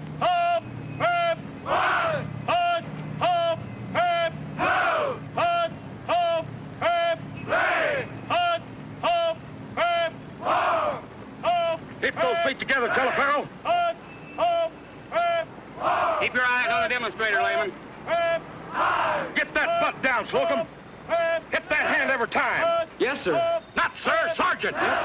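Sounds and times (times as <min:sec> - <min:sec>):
men shouting counts in unison: 0:00.2 - 0:25.0.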